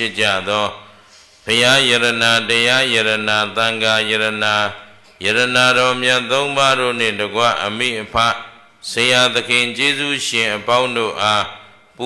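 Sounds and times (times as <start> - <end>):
monk chanting in low monotone: 0.0 - 12.0.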